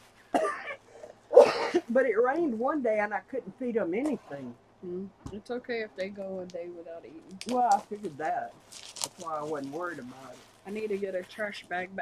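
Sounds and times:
woman coughing: 0.4 - 1.9.

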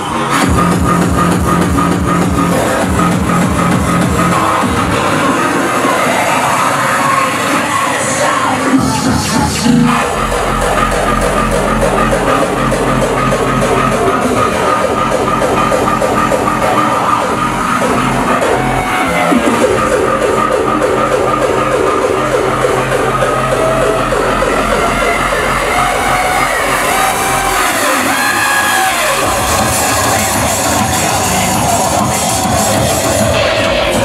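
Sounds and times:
loud electronic dance music: 0.0 - 34.0.

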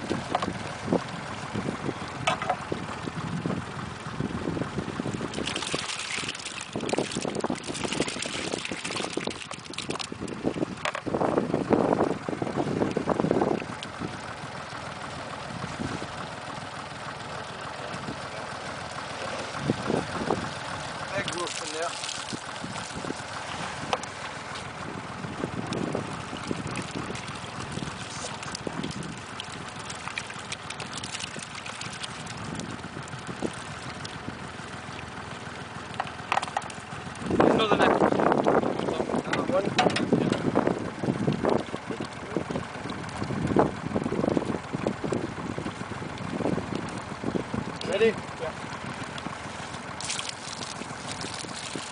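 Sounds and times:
wind noise on microphone: 0.0 - 14.2, 15.5 - 16.1, 19.6 - 20.5, 22.3 - 24.0, 24.8 - 29.3, 32.2 - 33.8, 37.2 - 47.8
water splashing and dripping: 5.0 - 11.0, 19.5 - 24.8, 25.6 - 47.9, 48.5 - 51.9.

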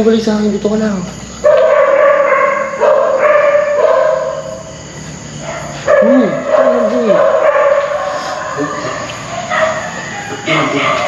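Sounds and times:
dog howling: 1.4 - 4.7, 5.4 - 11.0.

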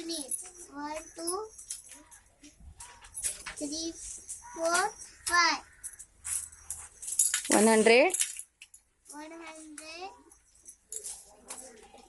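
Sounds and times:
child's soft voice: 9.1 - 10.3.

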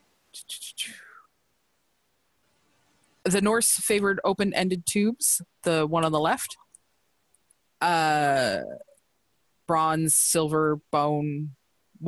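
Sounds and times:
person whispering: 0.4 - 1.3.

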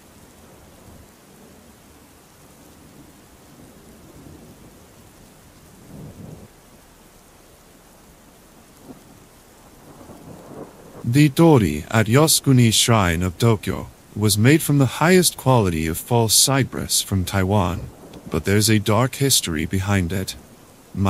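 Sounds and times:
rain falling on foliage: 0.0 - 21.0
distant thunder rumbles: 2.8 - 7.0, 8.5 - 14.2, 16.7 - 21.0.

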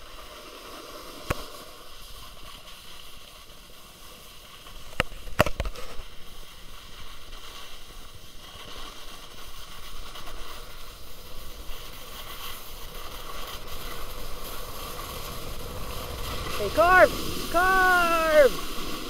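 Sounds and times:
skis carving over snow: 0.0 - 19.0.

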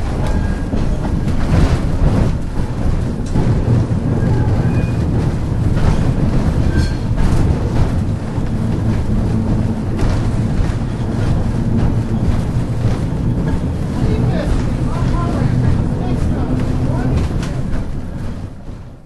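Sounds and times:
streetcar wheels and motors rumbling: 0.0 - 19.0.

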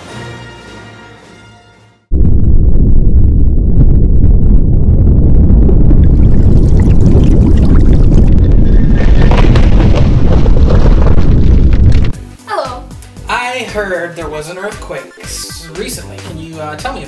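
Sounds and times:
low rumbling roar with crackle: 2.1 - 12.2.

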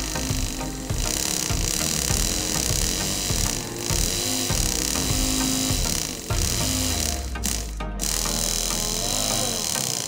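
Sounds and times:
small electric motor humming: 0.0 - 10.0.

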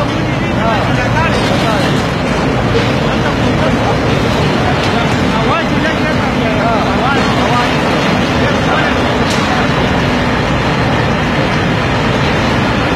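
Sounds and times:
rolling mill running: 0.0 - 12.9.

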